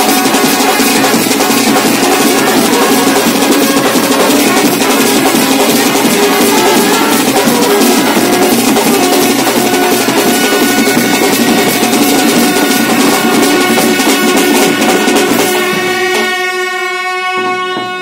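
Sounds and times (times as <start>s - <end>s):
brass and drum band playing: 0.0s - 18.0s
trumpet holding long note: 0.0s - 18.0s.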